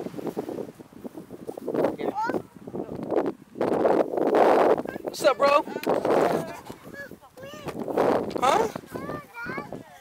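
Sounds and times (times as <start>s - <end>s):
rustling on camera microphone: 0.0s - 4.9s.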